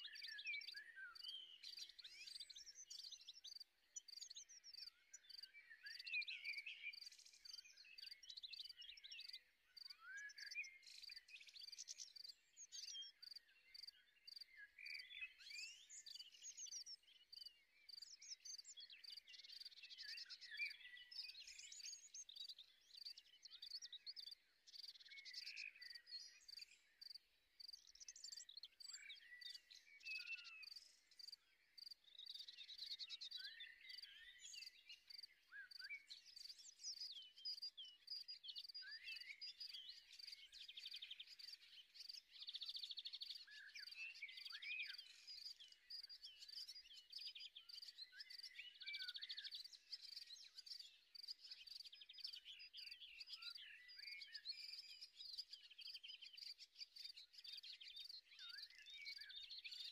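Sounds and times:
small birds chirping: 0:00.0 - 0:59.9.

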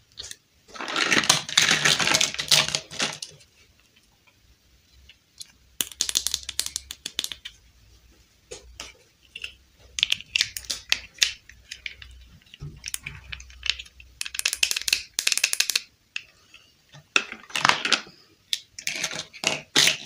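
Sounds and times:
plastic pieces rattling scrapes: 0:00.2 - 0:03.5, 0:18.8 - 0:20.0.

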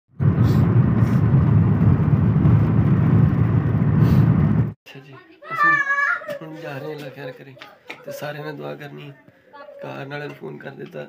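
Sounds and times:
car driving rumble: 0:00.2 - 0:04.8
man talking: 0:06.3 - 0:11.0.

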